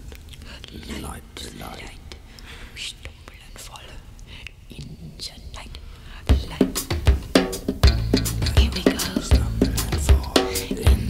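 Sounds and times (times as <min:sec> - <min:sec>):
faint low hum: 0:00.0 - 0:11.0
person whispering: 0:00.3 - 0:07.0, 0:08.4 - 0:11.0
band playing with drum kit: 0:06.3 - 0:11.0.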